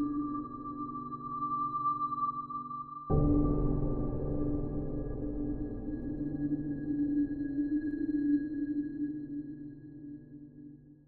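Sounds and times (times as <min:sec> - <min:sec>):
reverberant low piano chord: 0:03.1 - 0:07.6.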